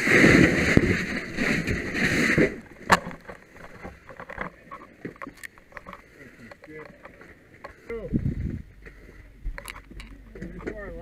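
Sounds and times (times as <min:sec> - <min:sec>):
faint clicks and knocks: 0:02.7 - 0:11.0.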